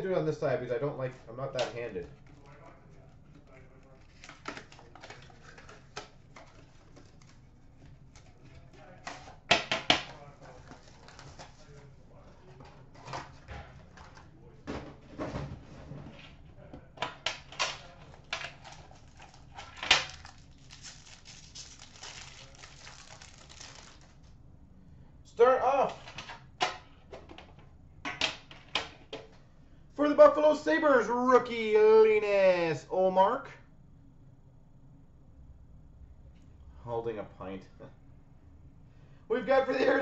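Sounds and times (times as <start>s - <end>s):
cardboard rustling: 1.8s - 9.4s, 10.3s - 14.3s, 17.8s - 24.2s.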